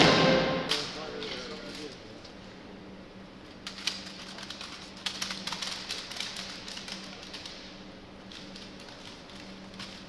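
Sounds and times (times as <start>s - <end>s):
rifles clicking and knocking: 3.6s - 10.0s.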